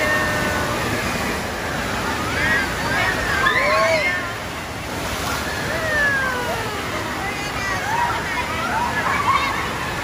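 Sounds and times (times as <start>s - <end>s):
water rushing: 0.0s - 10.0s.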